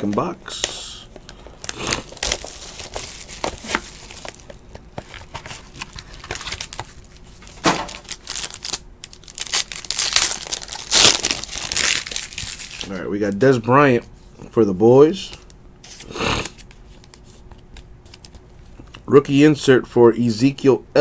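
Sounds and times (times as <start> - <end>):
plastic and foil wrapping crinkling: 0.5 - 13.4.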